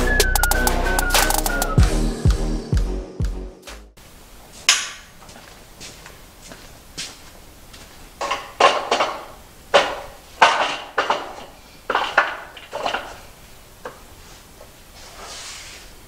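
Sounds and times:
metal parts clanking: 0:08.2 - 0:13.4.

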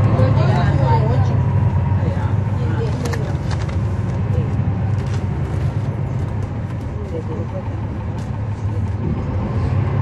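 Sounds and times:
bus diesel engine drone: 0:00.0 - 0:10.0.

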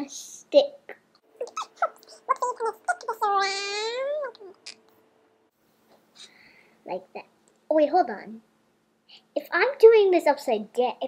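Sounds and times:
child squeaking and humming: 0:01.4 - 0:04.8.

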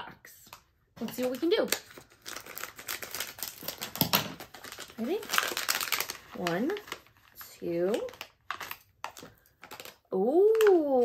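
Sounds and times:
foil packets crinkling: 0:01.0 - 0:11.0.

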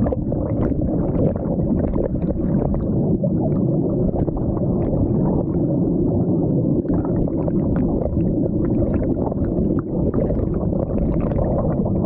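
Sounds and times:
underwater water rumble: 0:00.0 - 0:12.0.

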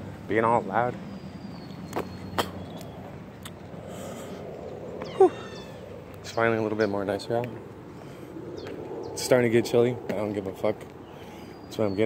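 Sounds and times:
outdoor background hiss: 0:00.0 - 0:12.0
animal cry dropping in pitch: 0:05.0 - 0:05.9.

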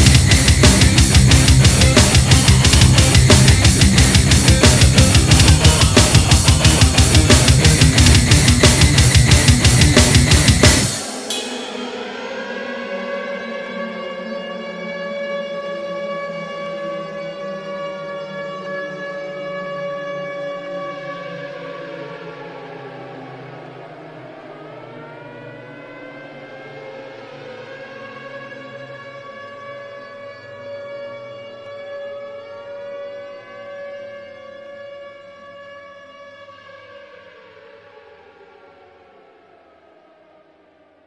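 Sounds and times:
siren wailing: 0:00.0 - 0:41.0.

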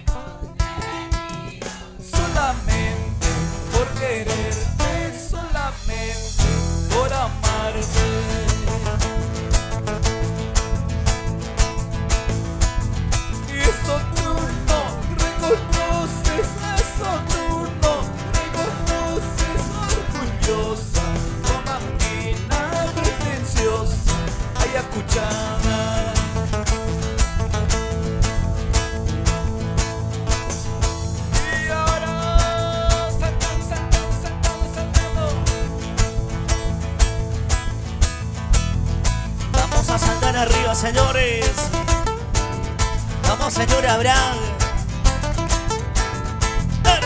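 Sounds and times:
man singing into microphone: 0:00.0 - 0:09.0, 0:13.4 - 0:26.6, 0:31.3 - 0:35.8, 0:39.5 - 0:41.9, 0:43.2 - 0:44.8
electric bass: 0:00.0 - 0:47.0
nylon-string guitars strumming: 0:00.0 - 0:47.0.

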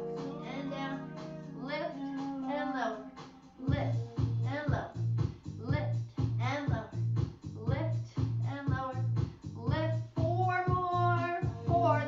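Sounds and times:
person singing: 0:00.0 - 0:04.9
music with bass beat: 0:00.0 - 0:12.0.

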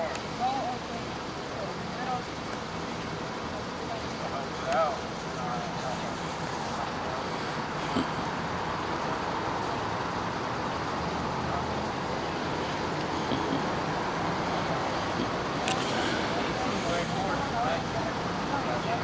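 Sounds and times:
road traffic rumble: 0:00.0 - 0:19.0.

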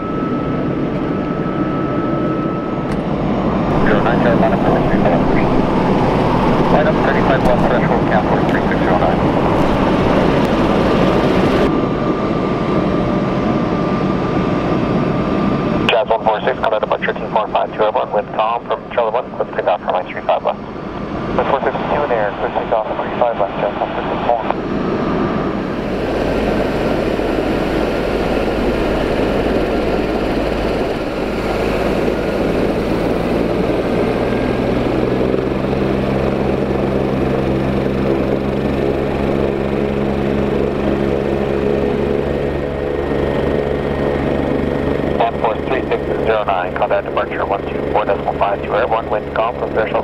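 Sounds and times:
low droning tones: 0:00.0 - 0:12.2
low pulsing: 0:00.0 - 0:16.6, 0:18.3 - 0:49.4
jet engine roar: 0:00.0 - 0:50.0.

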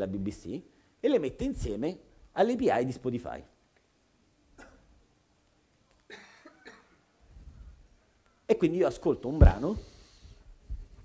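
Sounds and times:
faint cough: 0:04.6 - 0:05.0, 0:06.1 - 0:07.0.

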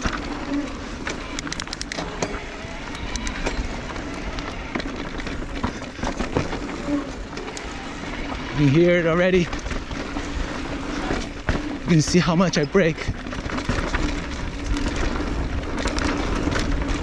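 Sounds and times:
bike rattling: 0:00.0 - 0:17.0
tyres rolling on loose dirt: 0:00.0 - 0:17.0
person speaking: 0:11.9 - 0:13.1.

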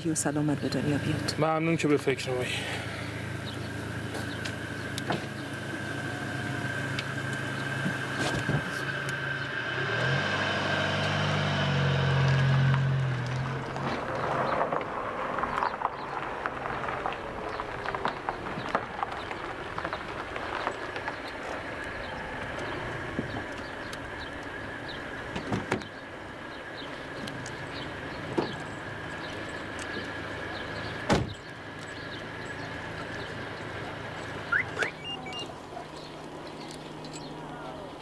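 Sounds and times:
car engine hum: 0:00.0 - 0:38.0
car door shutting: 0:05.0 - 0:05.4, 0:07.8 - 0:08.9, 0:25.3 - 0:25.9, 0:28.3 - 0:28.6, 0:31.0 - 0:31.4.

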